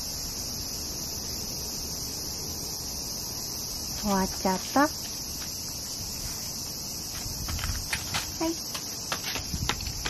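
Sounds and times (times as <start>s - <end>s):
cicadas singing: 0.0s - 10.0s.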